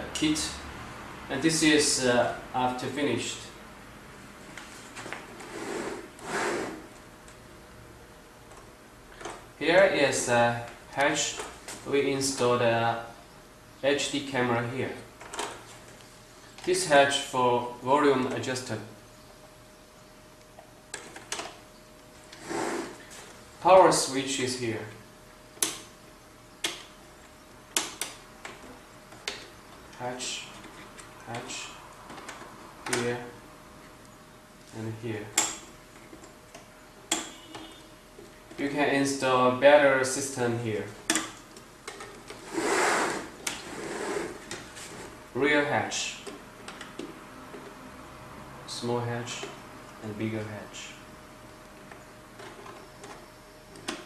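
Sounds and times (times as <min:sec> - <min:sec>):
model scraping on wooden table: 0:05.4 - 0:06.9, 0:22.4 - 0:23.0, 0:42.4 - 0:45.1.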